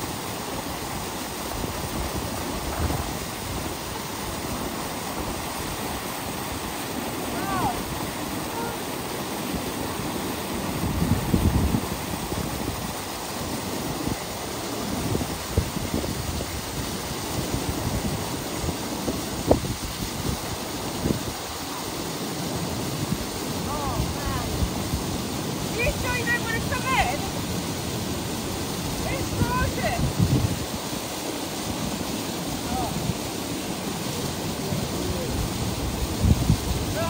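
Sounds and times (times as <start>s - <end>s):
waterfall rushing: 0.0s - 37.0s
wind gusts on microphone: 0.0s - 37.0s.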